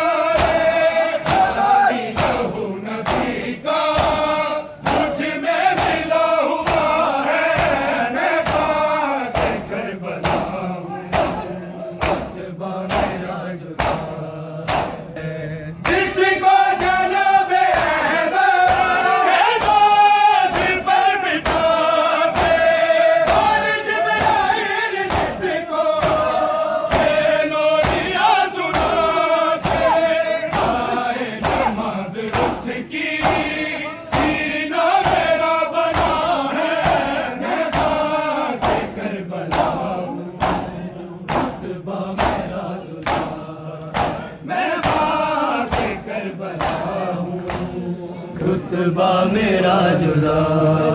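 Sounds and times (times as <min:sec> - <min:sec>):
men chanting in chorus: 0:00.0 - 0:50.9
hands striking bare chests: 0:13.8 - 0:15.1, 0:29.6 - 0:32.6, 0:40.4 - 0:41.6, 0:42.2 - 0:46.0.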